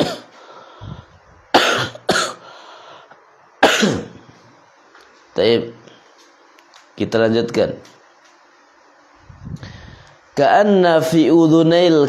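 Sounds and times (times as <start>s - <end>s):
man coughing: 0.0s - 0.3s, 1.5s - 2.4s, 3.6s - 4.2s.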